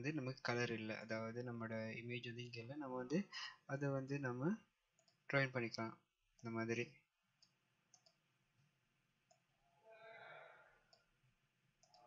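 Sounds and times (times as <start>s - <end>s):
faint computer mouse clicks: 7.4s - 8.2s, 11.8s - 12.0s
soft breath: 9.8s - 10.9s.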